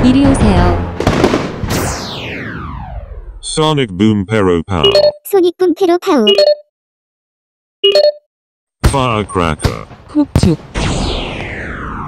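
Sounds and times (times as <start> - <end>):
cartoon firework burst: 1.0 - 3.3, 10.6 - 12.0.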